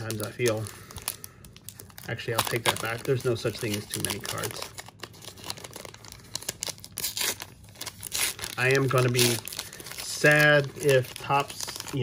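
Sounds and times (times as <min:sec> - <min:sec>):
wrapper being torn and crinkled: 0:00.0 - 0:12.0.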